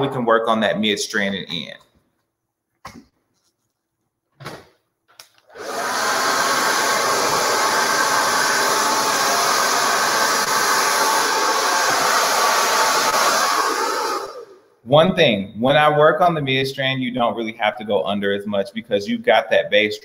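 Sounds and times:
hair dryer blowing: 5.5 - 14.6.

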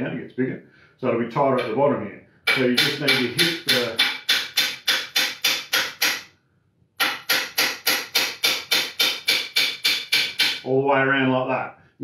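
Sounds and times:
hammer tapping on metal: 2.5 - 6.2, 7.0 - 10.6.

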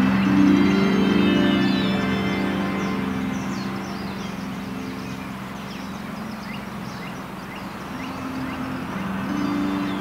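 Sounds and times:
singing bowl ringing: 0.0 - 6.4, 8.1 - 10.0
steady low drone: 0.0 - 10.0.

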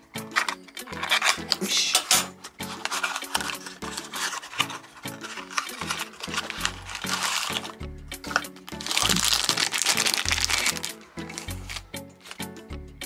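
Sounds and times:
background music with bass line: 0.0 - 13.0
cardboard packaging crinkling: 0.3 - 12.4.

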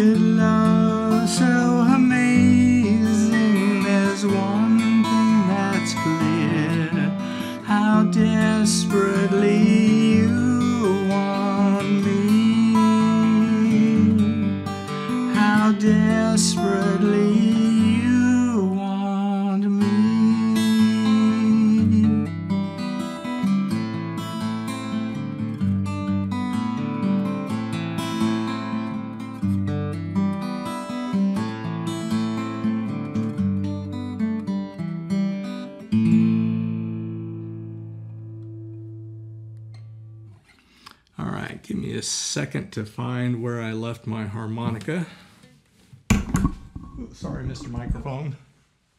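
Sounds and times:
man singing: 0.0 - 22.3
strummed acoustic guitar: 0.0 - 41.5, 42.6 - 48.6.

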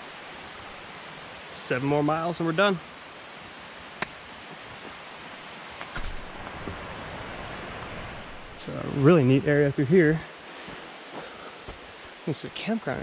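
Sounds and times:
forest background hiss: 0.0 - 13.0
man speaking: 1.6 - 2.8, 8.6 - 10.3, 12.2 - 13.0.

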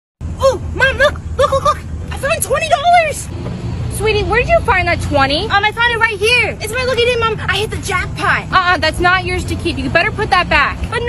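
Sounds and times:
low rumble: 0.2 - 11.0
high-pitched voice exclaiming: 0.4 - 3.2.

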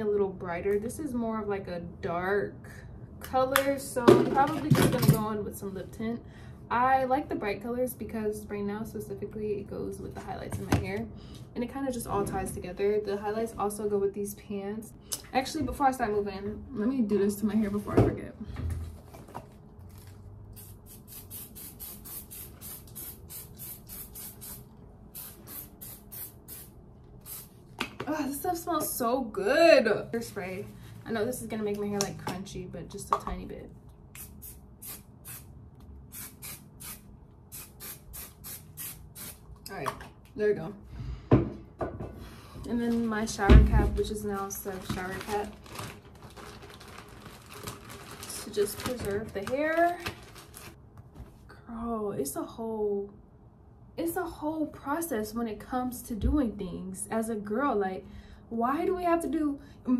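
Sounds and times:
hairspray hissing bursts: 20.6 - 27.5, 36.1 - 39.4.

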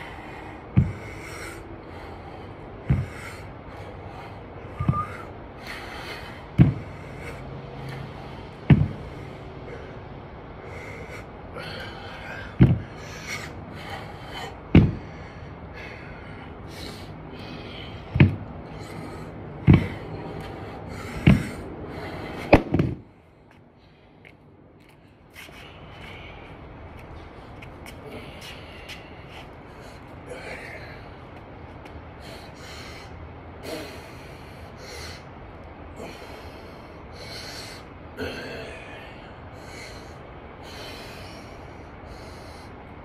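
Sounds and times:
movement noise: 0.0 - 32.3
man breathing hard: 0.0 - 43.0
dumbbell thumps: 0.7 - 1.0, 2.9 - 3.2, 4.8 - 5.2, 6.6 - 6.9, 8.6 - 9.1, 12.6 - 12.9, 14.7 - 15.1, 18.1 - 18.5, 19.6 - 20.0, 21.2 - 21.6, 22.5 - 23.1.

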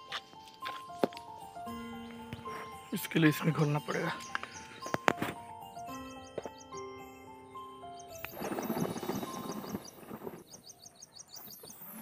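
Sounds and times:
background music: 0.0 - 10.4
birds chirping: 0.0 - 12.0.

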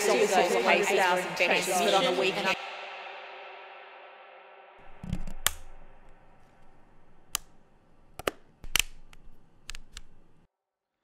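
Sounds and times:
sharp cracks and clicks: 5.0 - 10.5.

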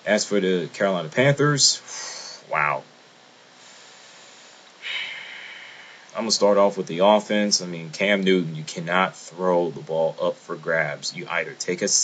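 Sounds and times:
faint steady hiss: 0.0 - 12.0
man breathing in: 1.8 - 2.5, 3.6 - 6.2.

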